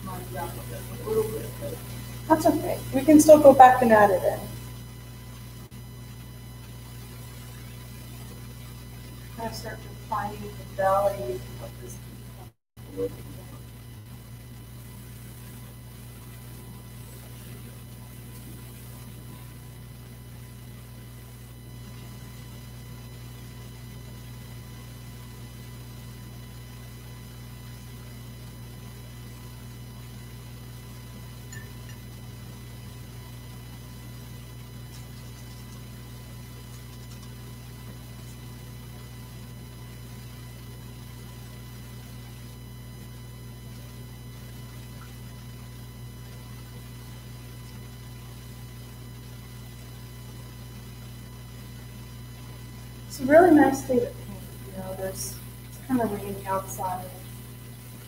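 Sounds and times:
faint high steady tones: 0.0 - 25.1, 38.0 - 58.0
low electrical hum: 0.0 - 58.0.

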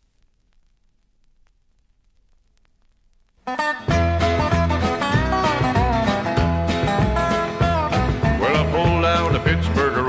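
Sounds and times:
country band music: 3.5 - 10.0
man singing: 8.2 - 10.0.

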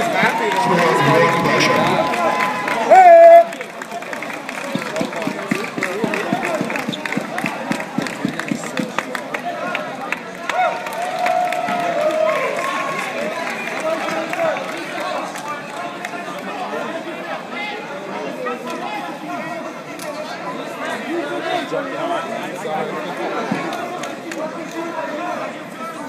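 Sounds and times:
crowd chatter and calling out: 0.0 - 26.0.

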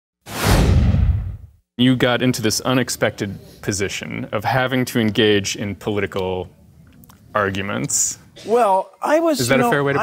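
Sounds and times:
whoosh with low rumble: 0.3 - 1.5.

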